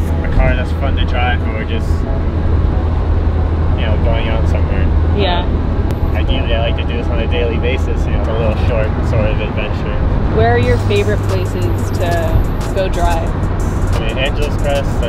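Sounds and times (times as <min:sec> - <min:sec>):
wind buffeting and road noise: 0:00.0 - 0:15.0
man and woman talking: 0:00.3 - 0:02.0, 0:03.8 - 0:05.4, 0:06.2 - 0:13.3, 0:14.0 - 0:15.0.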